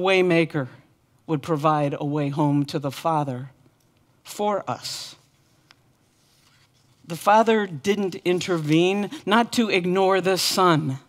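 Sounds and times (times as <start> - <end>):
paper rustling: 5.2 - 7.4, 8.0 - 9.3.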